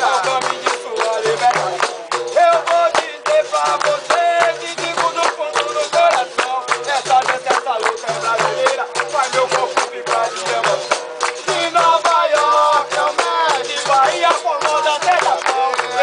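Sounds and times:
berimbaus playing rhythm: 0:00.0 - 0:16.0
group singing: 0:00.0 - 0:16.0
sharp percussive strikes: 0:00.0 - 0:16.0.

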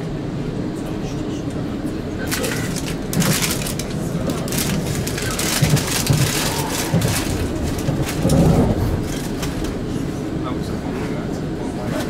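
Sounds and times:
train rumble inside carriage: 0:00.0 - 0:12.0.

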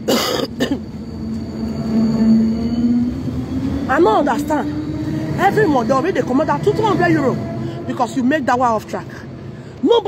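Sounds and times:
man clearing throat and coughing: 0:00.0 - 0:00.9
tram electric hum: 0:00.0 - 0:10.0.

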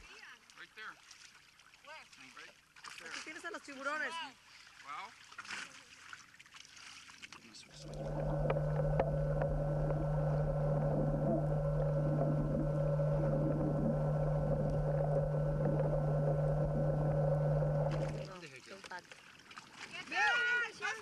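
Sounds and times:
boat engine heard underwater: 0:07.7 - 0:18.3.

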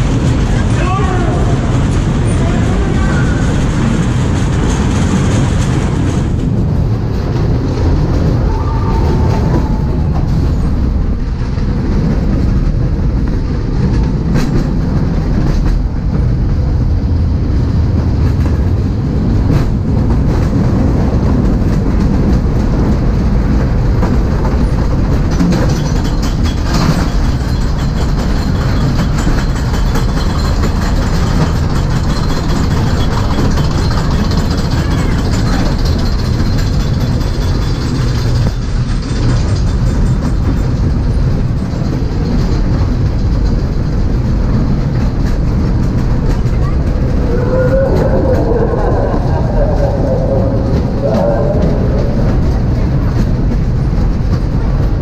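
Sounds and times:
ride car rolling on track: 0:00.0 - 0:55.0.

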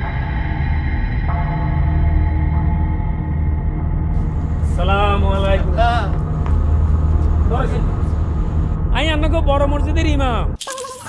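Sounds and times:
steady low hum: 0:01.3 - 0:08.9.

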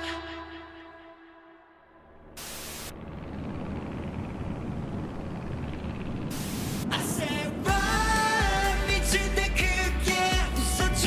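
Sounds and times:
dense noisy rumble: 0:02.0 - 0:11.0
white noise static burst: 0:02.2 - 0:03.5, 0:06.1 - 0:07.0.

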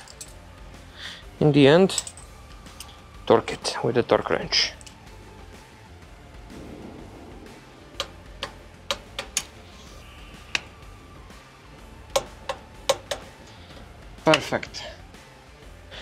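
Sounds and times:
low steady hum: 0:06.0 - 0:11.2.

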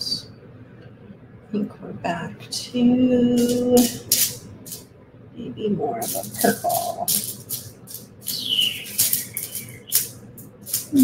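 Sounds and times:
beads rattling against metal tray: 0:03.3 - 0:04.9, 0:06.0 - 0:11.0.

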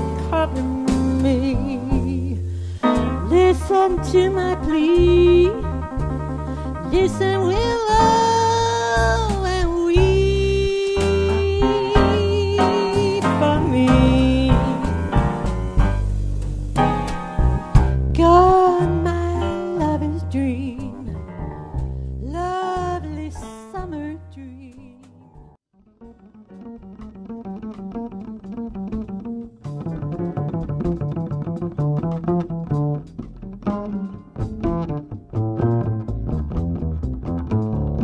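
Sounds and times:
jazz fusion band playing: 0:00.0 - 0:23.9, 0:27.2 - 0:38.0
vocalist singing with vibrato: 0:07.0 - 0:14.8.

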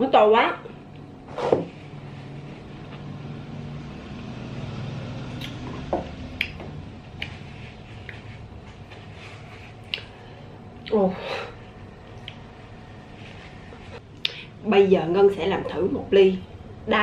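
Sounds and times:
steady low hum: 0:00.0 - 0:17.0
wet mouth clicks chewing: 0:06.4 - 0:06.6.

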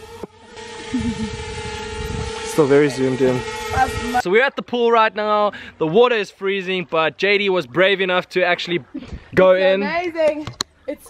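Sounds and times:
drone propellers humming: 0:00.0 - 0:04.3.

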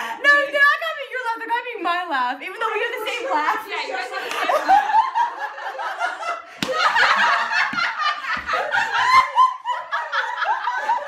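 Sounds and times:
girls talking: 0:00.2 - 0:04.9
girls laughing: 0:03.1 - 0:11.0.

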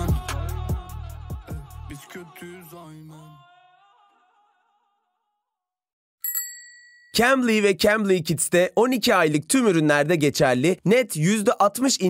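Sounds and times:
bright bell ding: 0:06.2 - 0:07.3.

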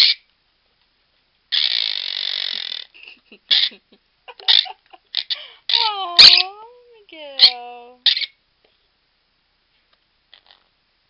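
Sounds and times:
parrot harsh raspy call: 0:00.0 - 0:00.2, 0:01.5 - 0:03.7, 0:04.4 - 0:06.5, 0:07.4 - 0:08.4.

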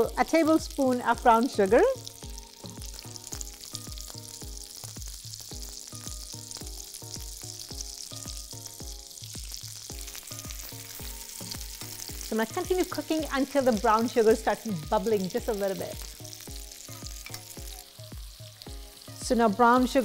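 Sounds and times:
food sizzling in a skillet: 0:00.0 - 0:20.0
background music with beat: 0:01.7 - 0:12.8, 0:14.7 - 0:20.0.

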